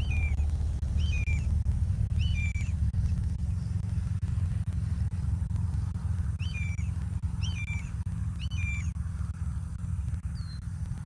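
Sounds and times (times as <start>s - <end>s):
low rumble: 0.0s - 11.0s
short high-pitched bird calls: 6.4s - 8.9s.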